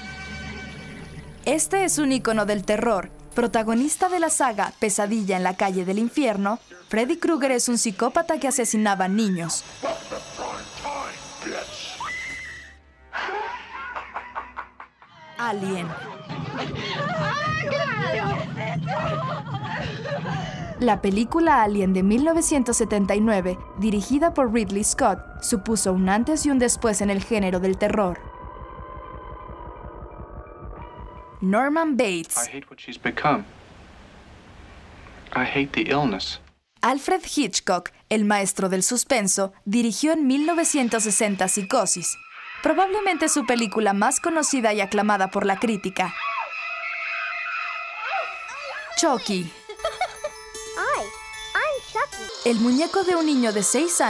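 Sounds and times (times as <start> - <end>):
people shouting and crying out: 11.8 - 14.0, 15.2 - 20.8, 42.2 - 49.2
shrieking high string music: 46.6 - 54.0.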